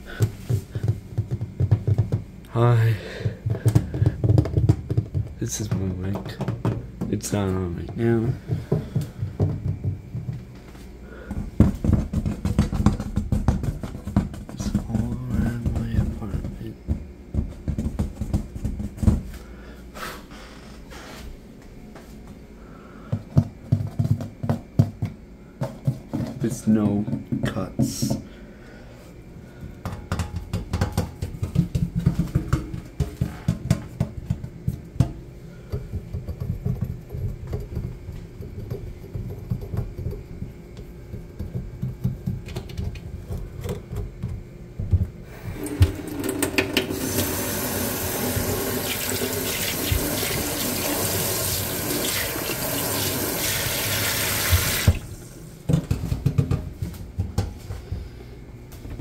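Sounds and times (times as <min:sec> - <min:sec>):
water running into metal sink: 0:45.6 - 0:55.0.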